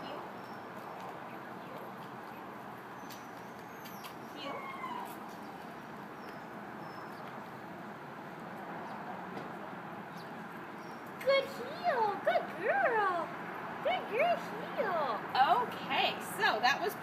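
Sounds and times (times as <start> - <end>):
outdoor background noise: 0.0 - 17.0.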